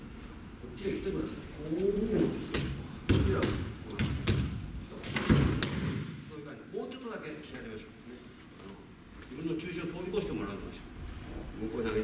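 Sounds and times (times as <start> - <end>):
hands and feet slapping mats: 2.1 - 6.2.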